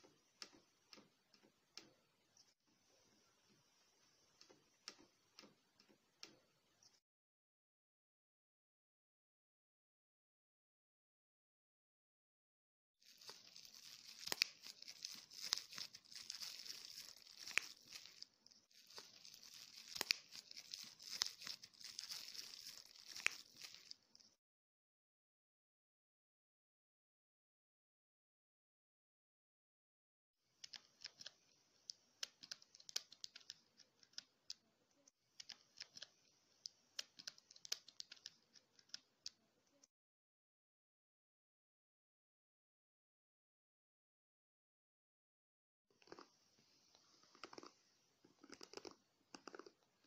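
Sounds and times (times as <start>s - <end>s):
bubble wrap crinkling: 13.0s - 24.0s.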